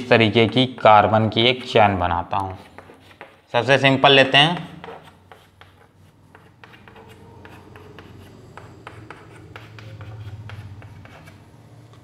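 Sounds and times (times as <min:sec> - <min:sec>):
pen scratching and tapping: 0:00.2 - 0:01.0, 0:02.4 - 0:03.4, 0:04.4 - 0:11.4
faint low hum: 0:05.3 - 0:12.0.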